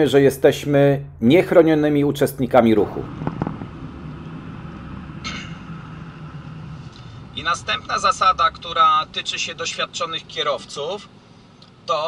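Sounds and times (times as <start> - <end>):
vehicle engine and road hum: 0.0 - 11.9.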